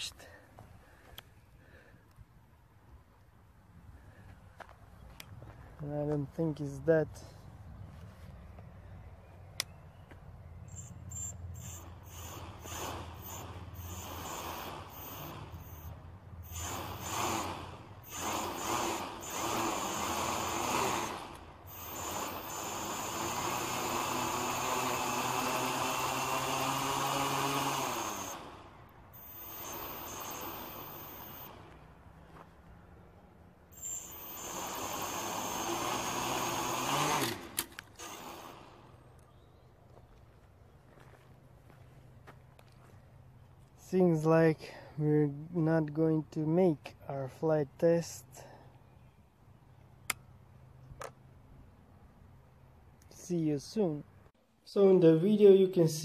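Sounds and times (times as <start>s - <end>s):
drone motors whining: 9.6s - 32.0s, 33.7s - 39.4s
sharp clicks of frame tipping: 37.1s - 38.1s.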